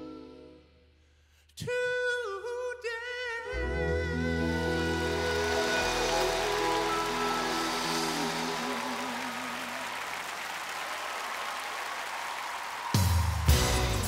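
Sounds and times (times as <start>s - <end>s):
voice singing with vibrato: 2.7s - 10.0s
gospel ensemble held chord: 3.5s - 10.8s
audience applause and cheering: 4.3s - 14.0s.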